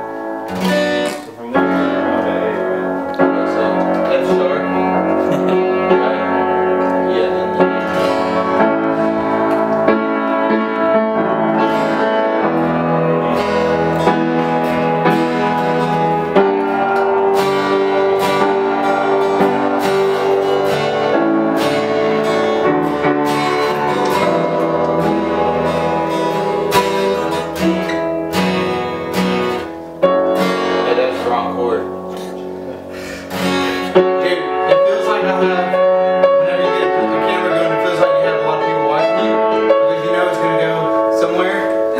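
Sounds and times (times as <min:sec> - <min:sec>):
acoustic guitar strumming: 0:00.0 - 0:41.9
piano playing chords: 0:00.0 - 0:41.9.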